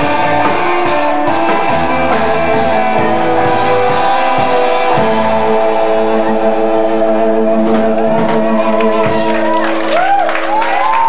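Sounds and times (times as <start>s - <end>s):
drums: 0.0s - 11.0s
guitar: 0.0s - 11.0s
held keyboard chords: 0.0s - 11.0s.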